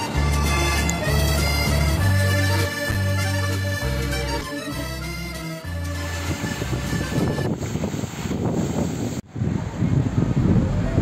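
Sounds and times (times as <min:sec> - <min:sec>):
fountain splashing: 0:00.0 - 0:11.0
wind buffeting microphone: 0:05.9 - 0:11.0.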